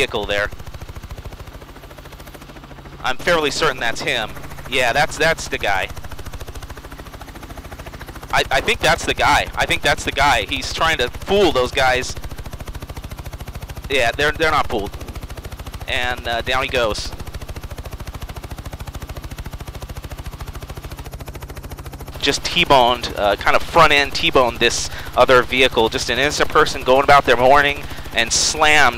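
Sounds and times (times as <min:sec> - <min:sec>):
helicopter engine running: 0:00.0 - 0:28.9
helicopter rotor beating: 0:00.0 - 0:28.9.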